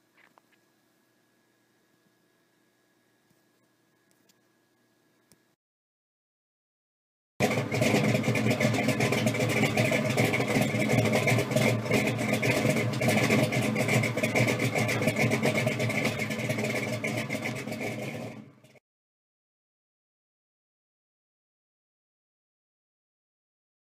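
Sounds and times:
car engine running rough: 7.4s - 18.8s.

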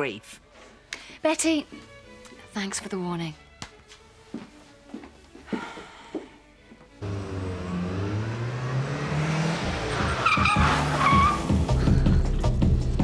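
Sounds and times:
car engine revving: 7.0s - 12.5s
tyres squealing: 9.8s - 11.8s.

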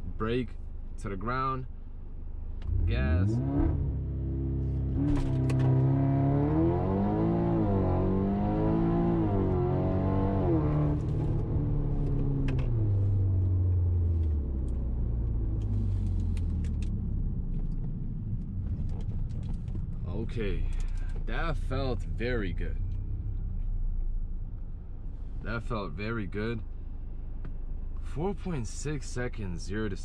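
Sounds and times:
car engine accelerating through gears: 2.6s - 19.8s.

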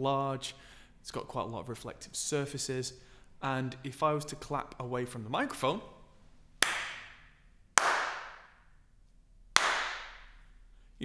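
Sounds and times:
hand claps with long echo: 6.6s - 8.7s, 9.5s - 10.4s.

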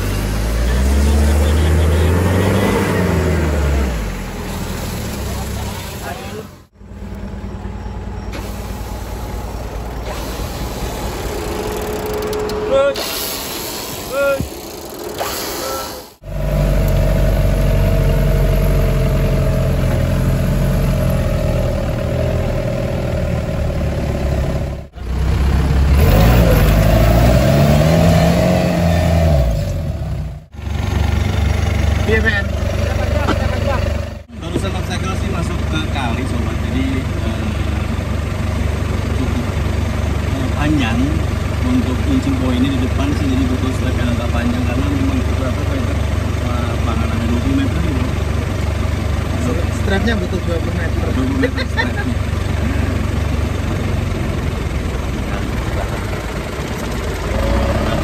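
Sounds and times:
off-road vehicle engine revving: 0.0s - 58.0s.

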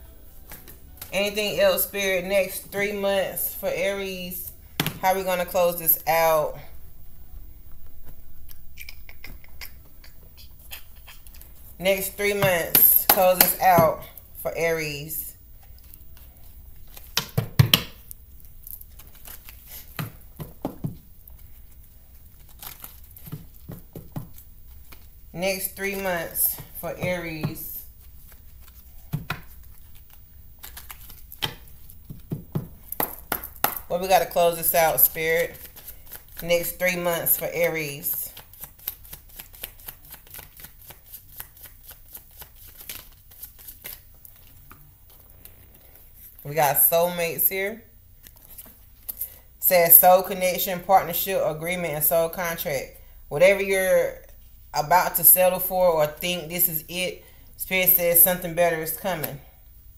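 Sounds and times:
taps and rustles of cards: 15.6s - 18.1s, 18.8s - 25.2s, 25.8s - 46.0s, 48.2s - 49.3s
cards being shuffled: 15.6s - 25.2s, 25.8s - 46.4s, 48.2s - 49.2s.

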